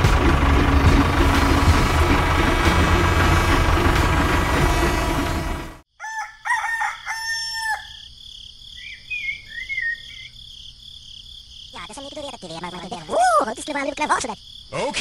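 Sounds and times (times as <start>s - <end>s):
rumbling mechanical noise: 0.0s - 5.8s
rooster crowing: 5.9s - 8.1s
high bird chirps: 8.8s - 10.4s.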